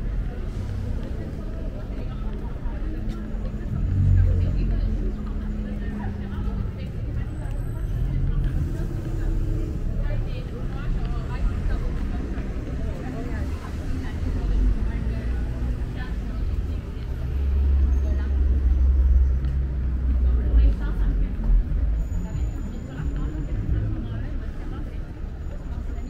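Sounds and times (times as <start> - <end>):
deep rumble: 0.0 - 24.4
passers-by talking: 0.0 - 26.0
traffic hum: 0.0 - 26.0.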